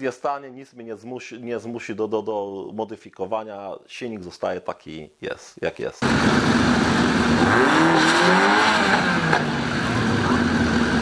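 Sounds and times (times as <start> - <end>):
car engines revving hard: 6.0 - 11.0.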